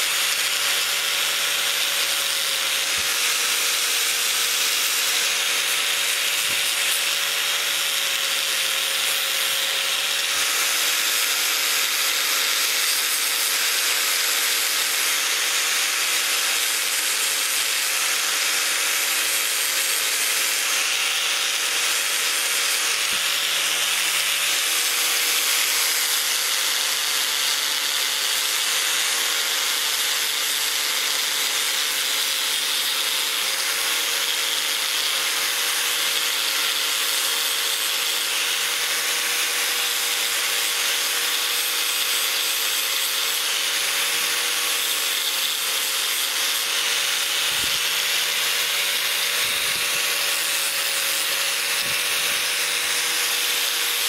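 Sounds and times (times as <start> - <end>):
angle grinder grinding metal: 0.0 - 54.0.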